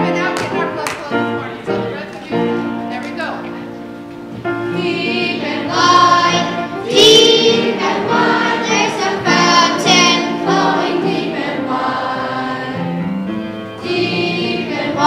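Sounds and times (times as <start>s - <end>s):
instrumental accompaniment: 0.0s - 15.0s
young children singing: 4.6s - 13.0s, 13.8s - 15.0s.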